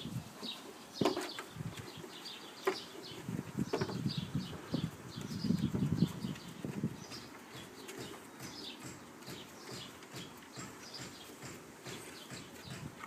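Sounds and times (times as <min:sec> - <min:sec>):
puppy claws tapping on wooden boards: 0:03.7 - 0:13.0.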